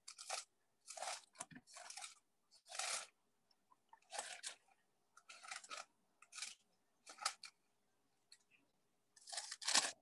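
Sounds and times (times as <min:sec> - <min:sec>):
paper pages rustling: 0:00.0 - 0:03.2, 0:03.9 - 0:07.6, 0:09.2 - 0:10.0.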